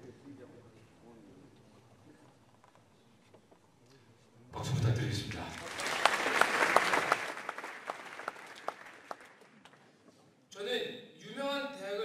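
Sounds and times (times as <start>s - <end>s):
audience applause: 5.5s - 9.8s.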